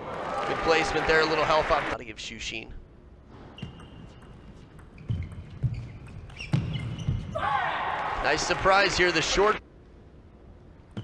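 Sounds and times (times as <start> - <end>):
shoes squeaking on floor: 3.4 - 7.4.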